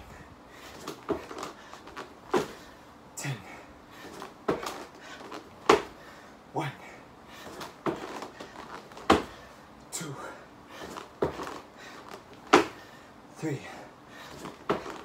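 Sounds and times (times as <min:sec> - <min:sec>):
man breathing hard and grunting: 0:02.4 - 0:04.2.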